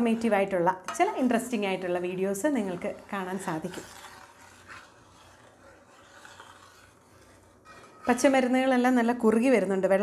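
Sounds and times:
ladle scraping a metal pan: 0.0s - 9.4s.

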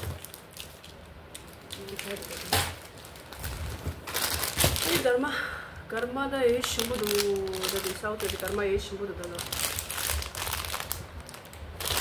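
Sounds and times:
plastic bag crinkling: 0.0s - 5.2s, 6.4s - 12.0s.

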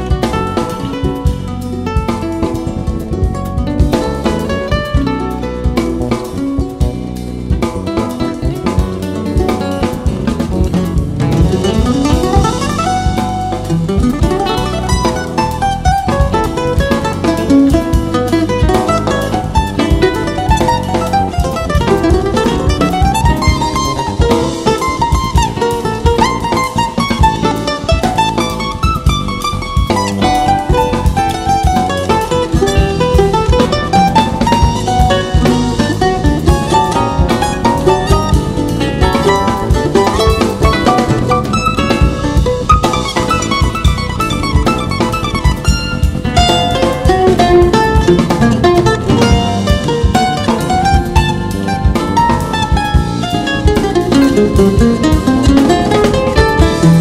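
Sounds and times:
bandolim: 0.0s - 57.0s
bass: 0.0s - 57.0s
drum kit: 0.0s - 57.0s
nylon-string acoustic guitar: 0.0s - 57.0s.

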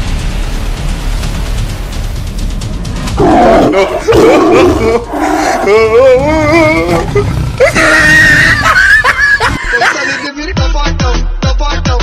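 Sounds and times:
person screaming in fright: 3.2s - 9.2s.

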